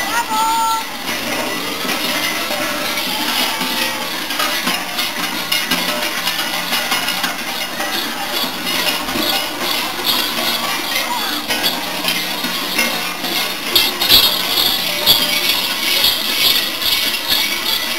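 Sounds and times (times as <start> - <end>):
large cowbells clanging: 0.0 - 17.9.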